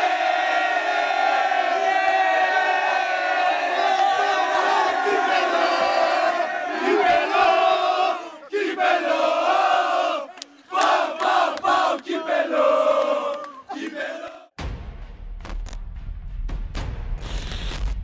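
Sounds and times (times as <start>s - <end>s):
men chanting in unison: 3.8s - 14.5s.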